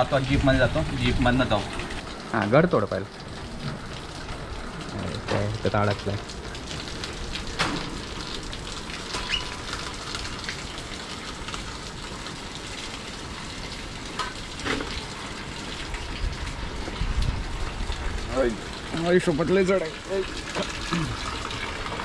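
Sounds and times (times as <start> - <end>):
steady rain falling: 0.0 - 22.0.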